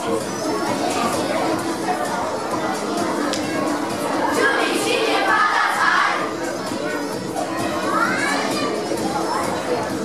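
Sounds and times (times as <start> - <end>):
backing music: 0.0 - 10.0
children singing and calling out: 0.0 - 10.0.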